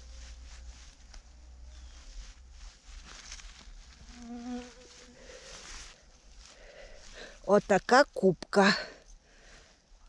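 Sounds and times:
rustle of moss and pine needles: 0.0s - 10.0s
flying insect buzzing: 4.0s - 5.6s.

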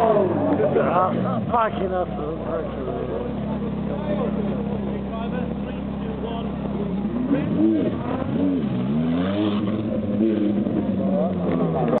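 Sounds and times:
crowd chatter: 0.0s - 12.0s
sports car engine accelerating: 0.0s - 12.0s.

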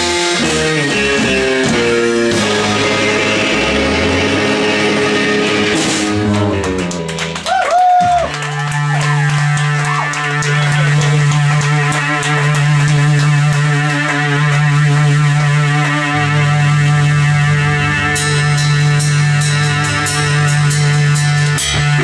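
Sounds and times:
deep bass note: 0.0s - 7.1s, 8.0s - 22.0s
sliding bending guitar notes: 0.0s - 7.4s, 8.0s - 22.0s
rock band playing droning music: 0.0s - 22.0s.

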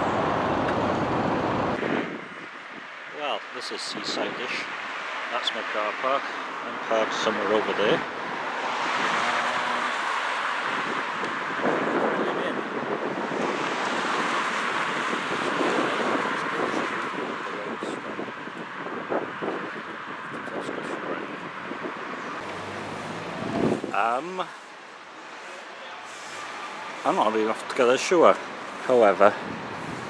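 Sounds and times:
wind buffeting microphone: 0.0s - 3.0s, 10.6s - 24.0s, 29.2s - 30.0s
road traffic passing: 0.0s - 30.0s.

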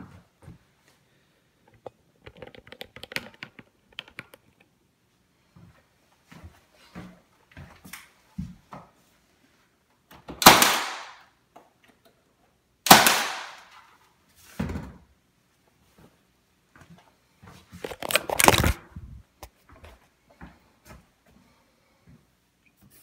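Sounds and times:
nail gun shot: 10.4s - 11.2s, 12.9s - 13.8s.

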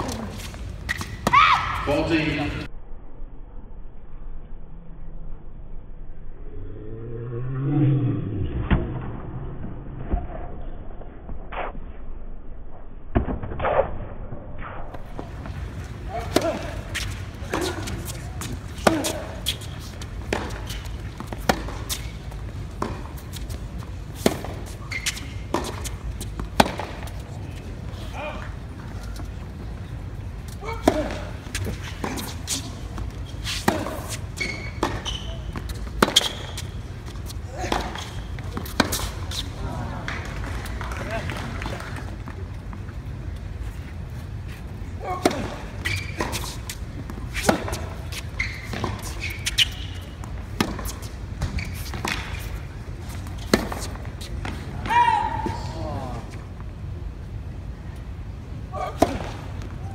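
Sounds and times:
tennis ball bounces: 15.0s - 27.2s, 32.9s - 39.4s, 45.2s - 54.9s
tennis racket strikes: 16.1s - 19.7s, 20.3s - 22.2s, 30.6s - 35.0s, 53.4s - 55.1s
murmuring voices: 39.5s - 42.2s.

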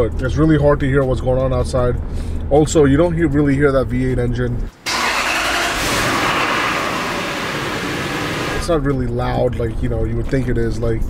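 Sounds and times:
vehicle running rushing noise: 4.9s - 8.8s.

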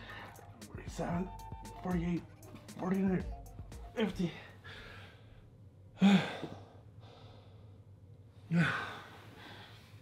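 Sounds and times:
quiet breathing: 4.3s - 10.0s
man sighing heavily: 6.0s - 6.7s.

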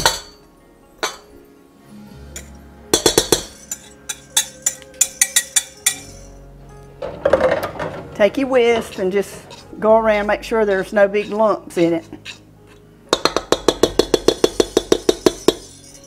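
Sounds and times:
whisk clinking against metal bowl: 2.4s - 6.3s, 8.6s - 12.4s, 13.1s - 16.0s.

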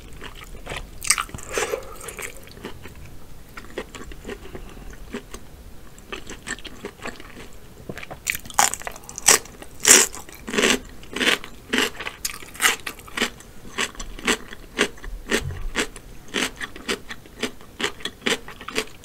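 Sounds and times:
cucumber crunching when chewed: 0.0s - 5.4s, 6.0s - 19.0s
wet mouth clicks: 1.1s - 2.8s.

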